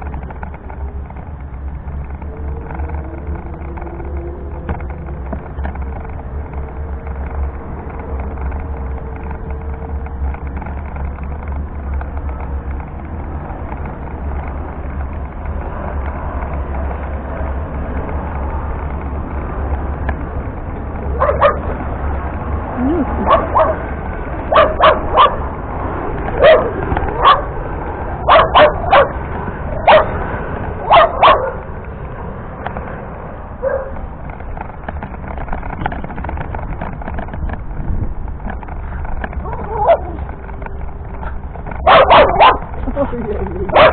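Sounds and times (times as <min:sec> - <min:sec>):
wheelchair motor humming: 0:00.0 - 0:43.9
dog barking: 0:21.2 - 0:21.8, 0:23.2 - 0:23.8, 0:24.5 - 0:25.4, 0:26.4 - 0:27.6, 0:28.2 - 0:29.2, 0:29.8 - 0:30.2, 0:30.8 - 0:31.7, 0:33.6 - 0:34.0, 0:39.5 - 0:40.1, 0:41.8 - 0:42.7.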